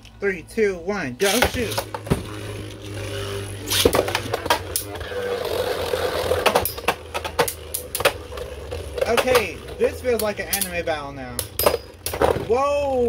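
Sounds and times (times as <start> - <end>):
spinning tops whirring: 1.2 - 13.0
spinning tops clacking together: 6.0 - 12.3.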